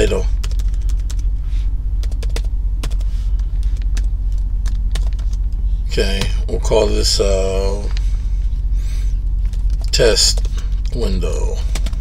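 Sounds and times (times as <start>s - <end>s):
loud low hum: 0.0s - 12.0s
keyboard keys clicking: 0.4s - 1.2s, 2.0s - 3.0s, 3.6s - 5.4s.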